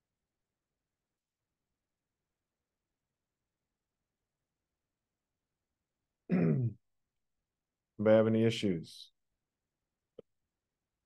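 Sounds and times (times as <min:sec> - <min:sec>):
man clearing throat: 0:06.3 - 0:06.8.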